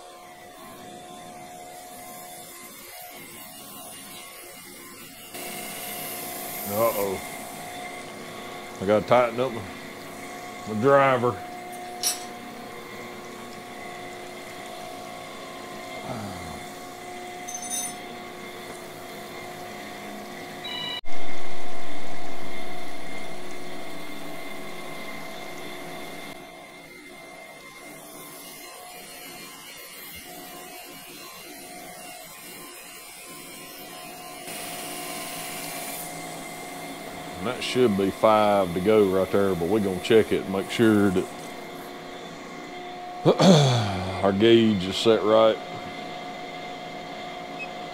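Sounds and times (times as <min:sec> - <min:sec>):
grinding machine humming: 0:00.0 - 0:32.4, 0:33.3 - 0:47.9.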